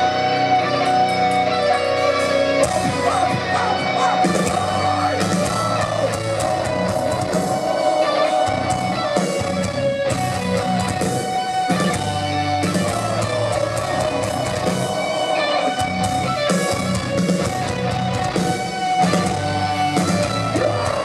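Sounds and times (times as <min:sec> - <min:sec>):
distorted electric guitars strumming: 0:00.0 - 0:21.0
metal band playing live: 0:00.0 - 0:21.0.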